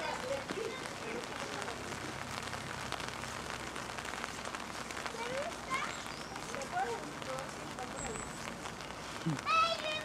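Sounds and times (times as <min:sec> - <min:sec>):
faint voices: 0:00.0 - 0:10.0
rain pattering: 0:00.0 - 0:10.0.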